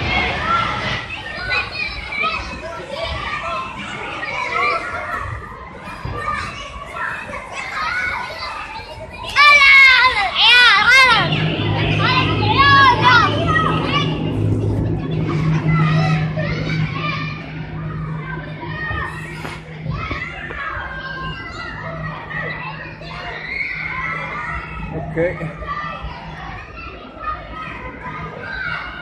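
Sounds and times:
children shouting and squealing: 0:00.0 - 0:29.0
steady low hum: 0:08.6 - 0:29.0
high-pitched shrieks: 0:09.4 - 0:26.7.

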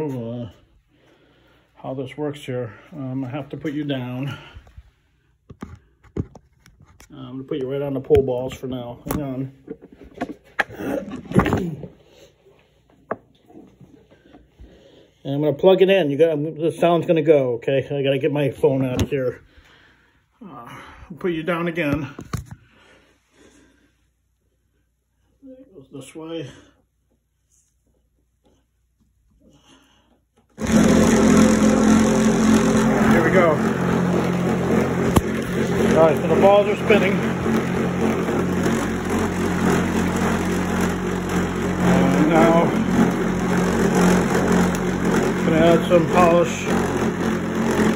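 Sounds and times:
motor humming and whirring: 0:30.6 - 0:47.9
scraping and rubbing: 0:30.6 - 0:47.9.

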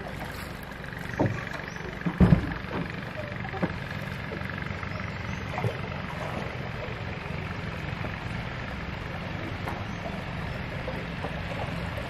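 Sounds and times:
boat engine rumble: 0:00.0 - 0:12.0
water noise: 0:00.0 - 0:12.0.

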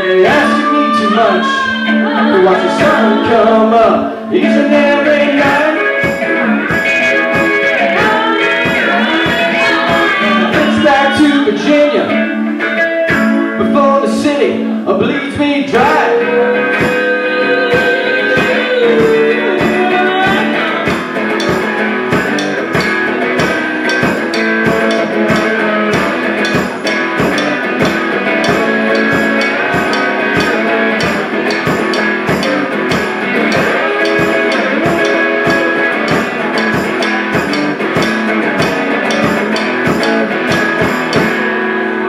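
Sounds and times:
guitars playing: 0:00.0 - 0:42.0
steady drum beat: 0:04.4 - 0:11.6, 0:16.6 - 0:41.6.

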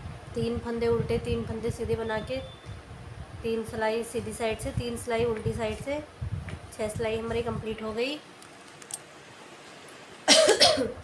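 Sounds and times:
person coughing: 0:10.3 - 0:11.0.

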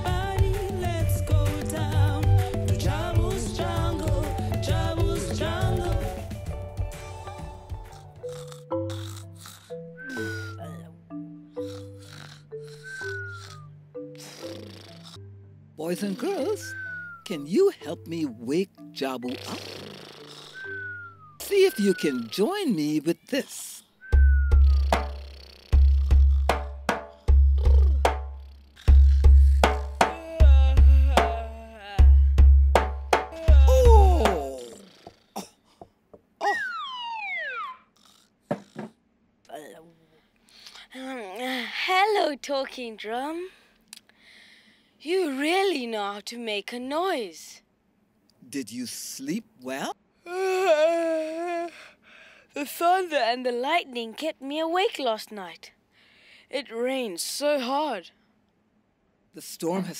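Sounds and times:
background music: 0:00.0 - 0:22.5, 0:24.3 - 0:34.7
cartoon snoring: 0:07.8 - 0:10.9, 0:11.5 - 0:15.3, 0:16.0 - 0:16.7, 0:19.3 - 0:21.1, 0:24.5 - 0:31.7, 0:33.5 - 0:35.4, 0:37.8 - 0:39.0
falling whistle sound effect: 0:16.7 - 0:17.2, 0:20.6 - 0:21.4, 0:24.1 - 0:24.8, 0:36.4 - 0:37.9
quick thumps: 0:38.5 - 0:39.0.

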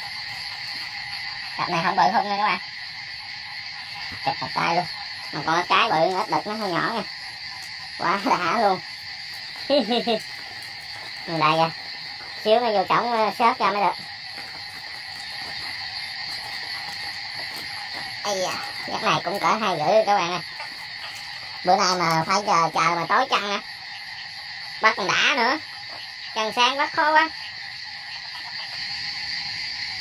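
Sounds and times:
chorus of frogs calling: 0:00.0 - 0:30.0
crickets and insects trilling: 0:00.0 - 0:30.0.

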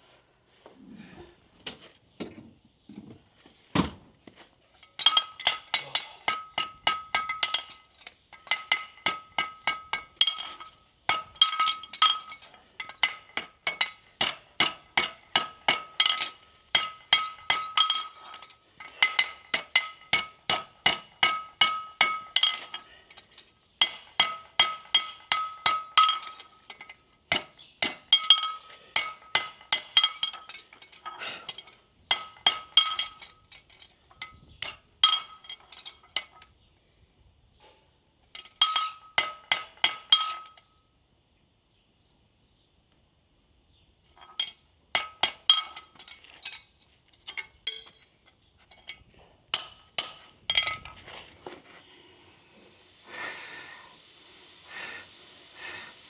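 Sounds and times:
hammer striking horseshoe on anvil: 0:04.9 - 0:36.5, 0:38.4 - 0:40.8, 0:44.2 - 0:51.1.

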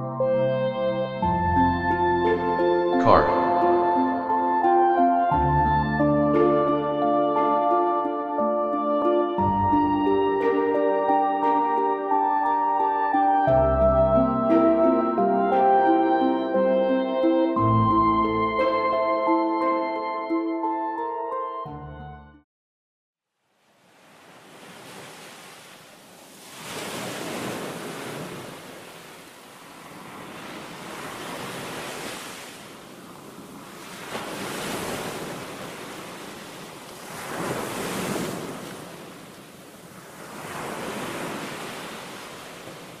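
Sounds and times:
ocean surf on sandy beach: 0:23.5 - 0:43.0.

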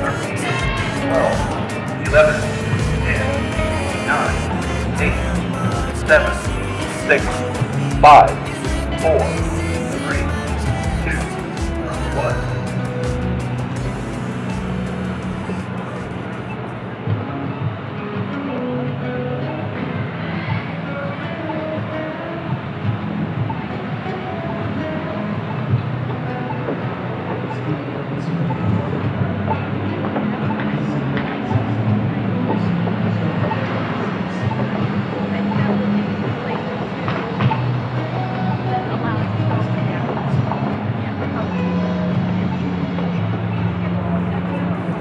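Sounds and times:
cars passing: 0:00.0 - 0:45.0
music playing: 0:00.0 - 0:45.0
people's voices: 0:00.0 - 0:45.0
traffic rumbling: 0:00.0 - 0:45.0.

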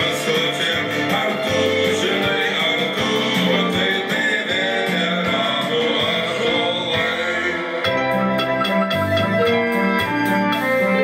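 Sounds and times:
electronic keyboard chords: 0:00.0 - 0:11.0
rhythmic ticks: 0:00.0 - 0:11.0
steady beat: 0:00.0 - 0:11.0.

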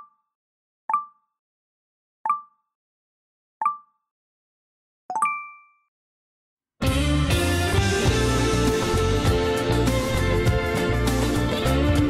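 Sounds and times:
notification pings: 0:05.1 - 0:05.9.

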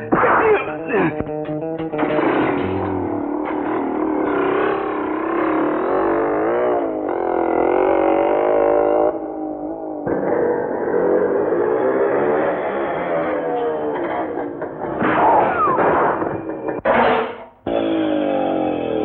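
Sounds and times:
motorcycle engine revving: 0:01.0 - 0:17.0, 0:17.6 - 0:19.0.

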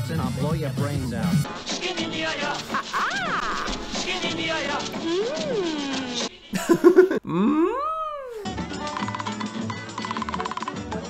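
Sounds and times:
lively old song with percussion: 0:00.0 - 0:07.1, 0:08.4 - 0:11.0.

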